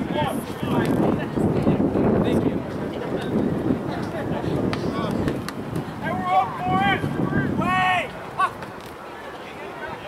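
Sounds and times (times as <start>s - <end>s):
wind rumbling on microphone: 0.0s - 8.9s
people shouting: 6.0s - 8.6s.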